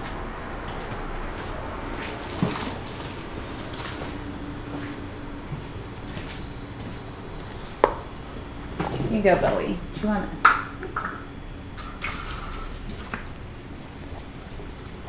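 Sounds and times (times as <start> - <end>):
room noise: 0.0 - 15.0.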